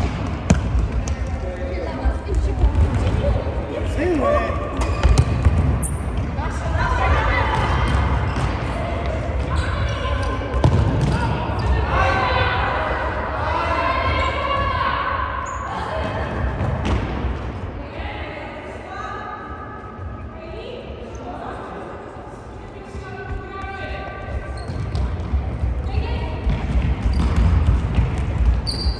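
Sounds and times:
ball kicks: 0:04.8 - 0:06.3, 0:10.5 - 0:11.4.

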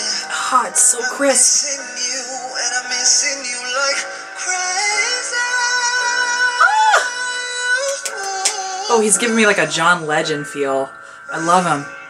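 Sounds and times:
man singing a slow ballad: 0:00.0 - 0:09.6
backing music: 0:00.0 - 0:12.0.

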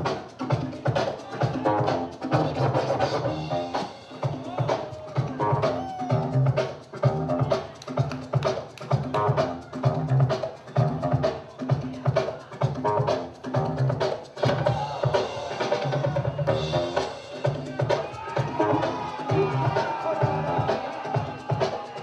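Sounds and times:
breakbeat music: 0:00.0 - 0:22.0.

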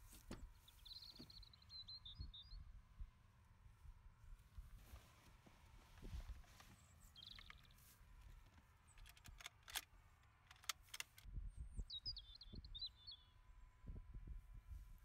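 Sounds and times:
sharp clicks: 0:08.9 - 0:11.3.

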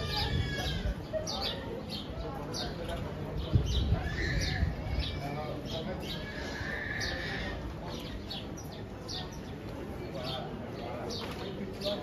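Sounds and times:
murmur of passers-by talking: 0:00.0 - 0:12.0
small birds chirping: 0:00.0 - 0:12.0.

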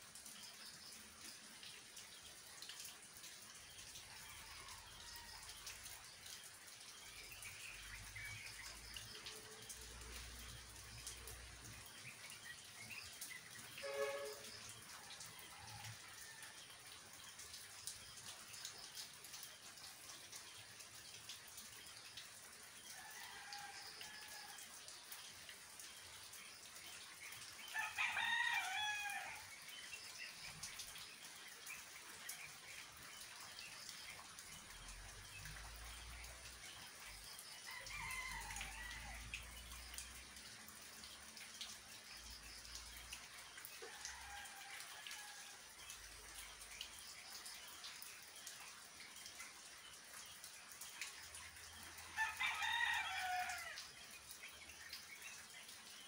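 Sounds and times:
rain hiss: 0:00.0 - 0:56.0
rooster crowing: 0:27.8 - 0:29.5, 0:37.7 - 0:39.2, 0:52.2 - 0:53.8.

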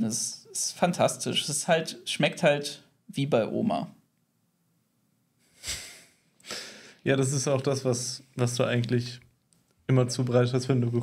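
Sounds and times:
breath noises close to microphone: 0:05.4 - 0:07.0
sniff through the nose: 0:05.4 - 0:07.0.

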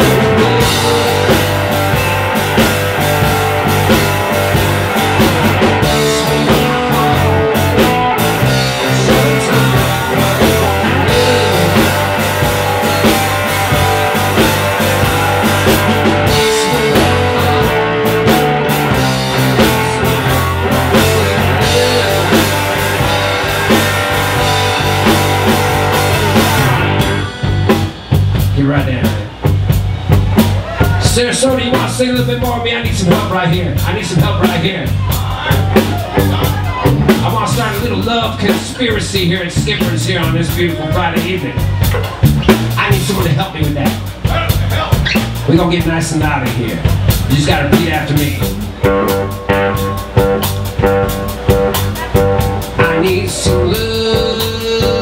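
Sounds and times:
electric blues band playing: 0:00.0 - 0:55.0.

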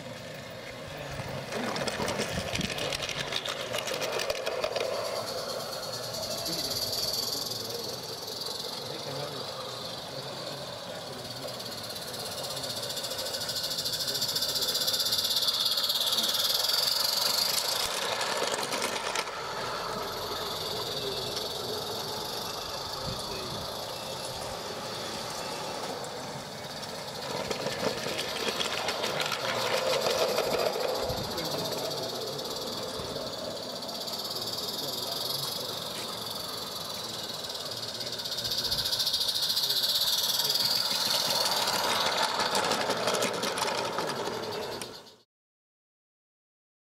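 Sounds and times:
steam locomotive hissing: 0:00.0 - 0:45.1
indistinct voices talking: 0:00.0 - 0:45.2
light mechanical noise: 0:00.0 - 0:45.2.

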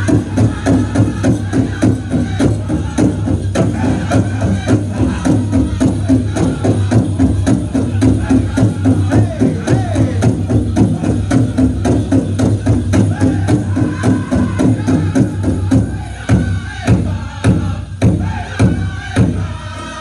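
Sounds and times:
fast beat on big drum: 0:00.0 - 0:19.6
drum group singing: 0:00.0 - 0:20.0.

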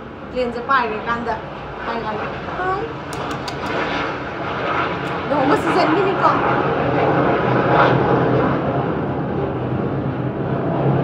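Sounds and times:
engine-like drone: 0:00.0 - 0:11.0
light clicks: 0:03.1 - 0:03.9.

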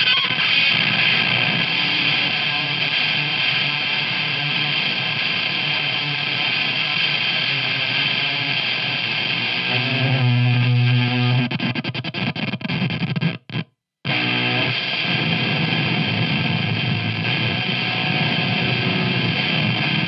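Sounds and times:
heavily distorted electric guitar: 0:00.0 - 0:20.0.

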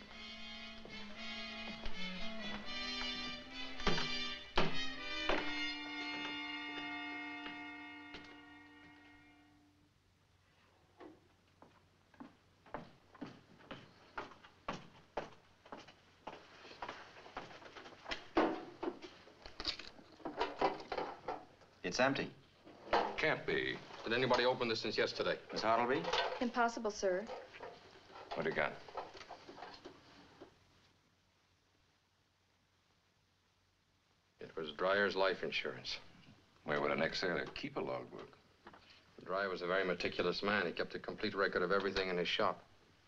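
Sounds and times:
film score music: 0:00.0 - 0:09.6
footsteps on hard floor: 0:00.8 - 0:08.3, 0:11.0 - 0:19.3.

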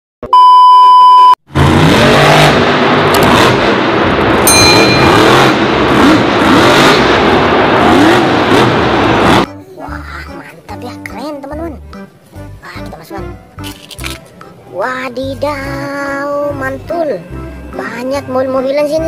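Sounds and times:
test-tone beep: 0:00.2 - 0:01.4
monster truck engine revving: 0:01.5 - 0:09.5.

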